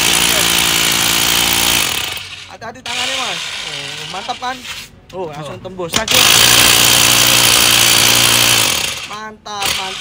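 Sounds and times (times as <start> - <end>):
hammer drill boring into concrete: 0.0 - 4.5, 6.0 - 10.0.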